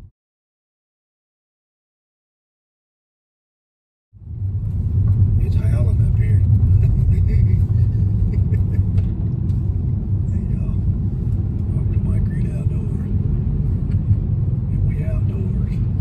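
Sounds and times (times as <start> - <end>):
car interior engine and tyre rumble: 4.2 - 16.0.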